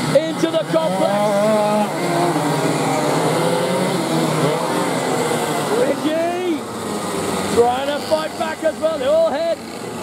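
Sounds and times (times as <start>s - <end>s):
racing kart engines: 0.0s - 10.0s.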